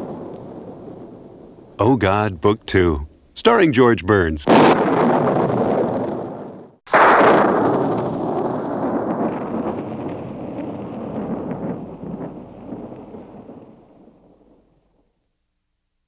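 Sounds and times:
rolling thunder with crackles: 0.0 - 1.8, 4.5 - 15.2.

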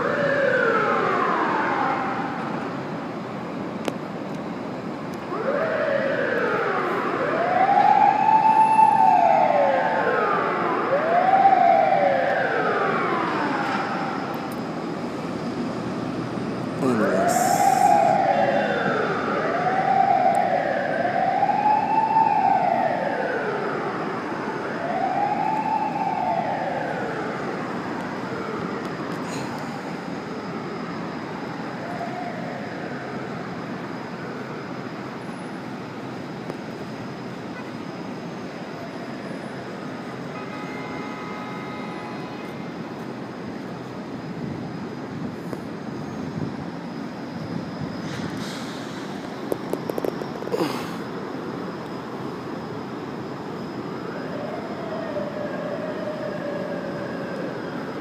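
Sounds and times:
city traffic hum: 0.0 - 58.0
emergency vehicle siren wailing: 0.0 - 58.0.

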